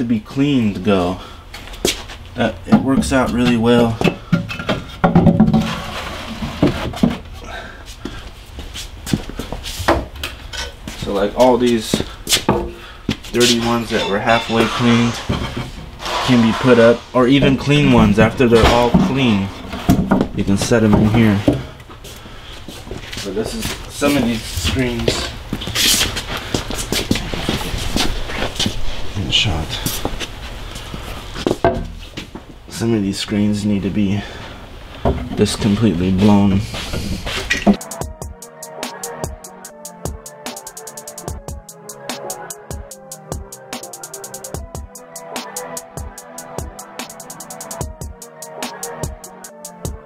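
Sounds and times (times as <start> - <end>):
footsteps: 1.5 - 32.8, 34.9 - 41.7
frames knocking and clattering: 2.7 - 7.3, 12.4 - 12.8, 13.5 - 15.9, 17.8 - 21.8, 31.5 - 32.0
metal frame scraping into rack: 13.4 - 20.0.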